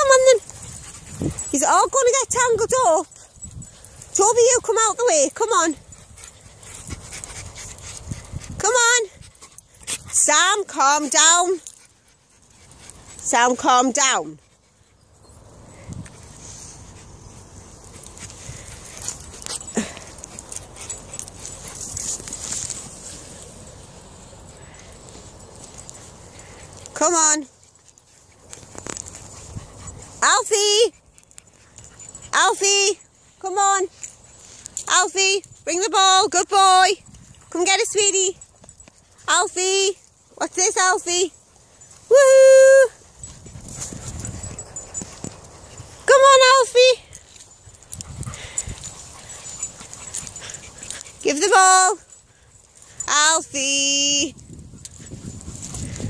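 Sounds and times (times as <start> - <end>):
rustling and handling noise: 0.0 - 56.0.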